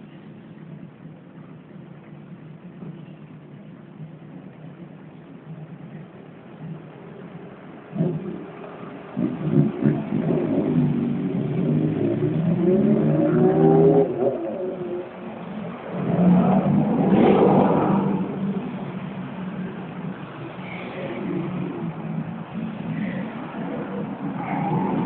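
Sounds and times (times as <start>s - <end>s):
motorcycle engines revving: 5.6s - 25.0s
car passing by: 8.0s - 19.6s.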